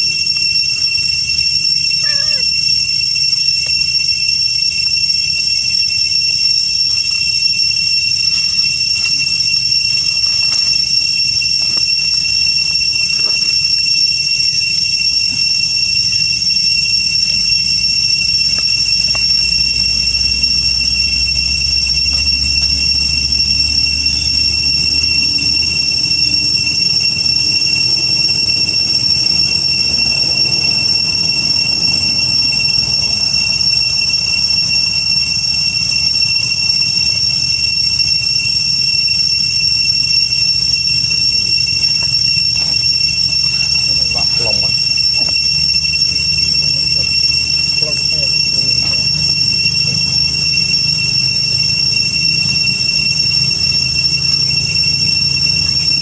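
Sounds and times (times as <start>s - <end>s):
cicadas droning: 0.0s - 56.0s.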